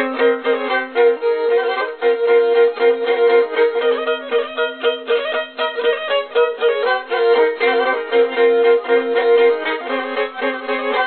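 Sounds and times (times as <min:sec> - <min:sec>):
bowed fiddle folk tune: 0:00.0 - 0:11.0.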